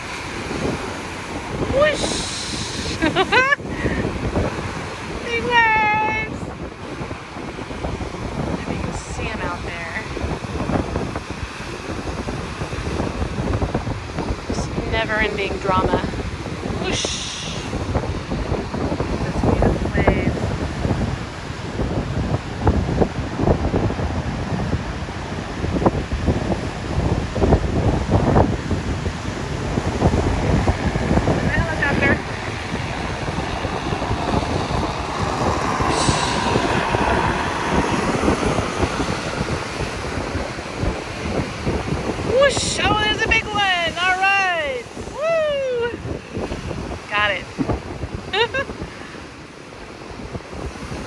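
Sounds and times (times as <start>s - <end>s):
ocean surf breaking: 0.0s - 51.0s
wind buffeting microphone: 0.0s - 51.0s.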